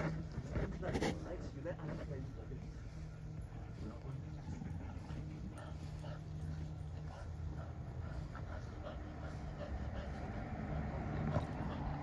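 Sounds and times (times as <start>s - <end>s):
dogs panting: 0.0s - 12.0s
dogs play-wrestling: 0.0s - 12.0s.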